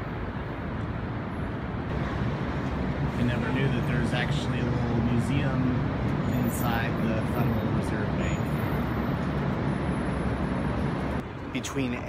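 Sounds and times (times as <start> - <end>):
traffic engine hum: 0.0 - 12.0.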